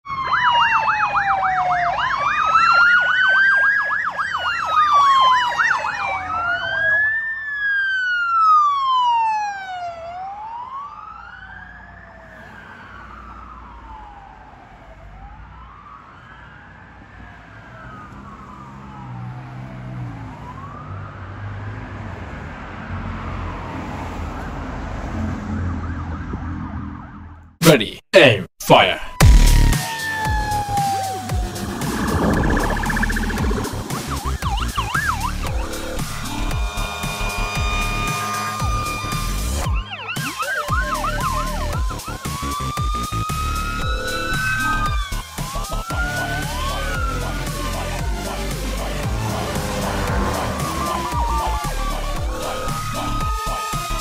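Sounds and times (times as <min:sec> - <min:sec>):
siren yelp: 0:00.0 - 0:21.6, 0:23.4 - 0:27.4, 0:28.8 - 0:54.0
siren wail: 0:00.0 - 0:27.5, 0:29.0 - 0:54.0
traffic rumble: 0:09.9 - 0:27.5, 0:30.3 - 0:54.0.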